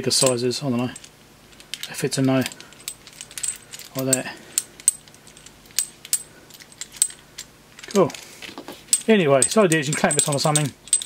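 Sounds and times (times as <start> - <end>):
small metal parts clicking: 0.2 - 8.2, 8.9 - 11.0.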